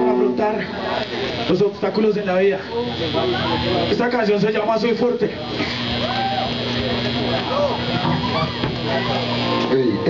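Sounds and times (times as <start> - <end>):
amplifier electrical hum and hiss: 0.0 - 10.0
voices calling out: 5.4 - 10.0.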